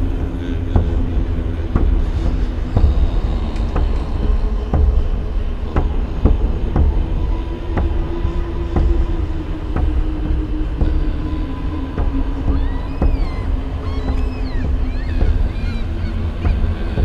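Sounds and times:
steady hum falling in pitch: 0.0s - 17.0s
train rumbling on rails: 0.0s - 17.0s.

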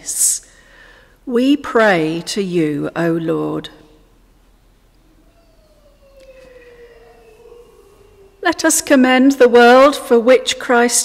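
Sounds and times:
faint siren wailing: 4.9s - 10.0s.

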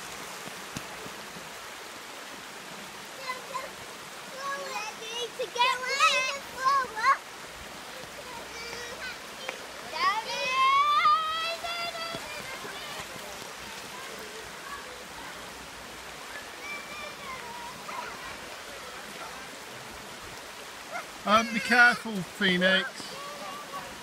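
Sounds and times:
river water rushing over rocks: 0.0s - 24.0s
faint voices: 3.1s - 24.0s.

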